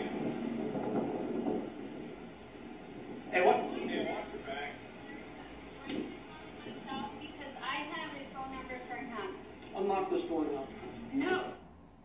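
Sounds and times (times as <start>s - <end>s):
muffled television audio: 0.0s - 12.0s.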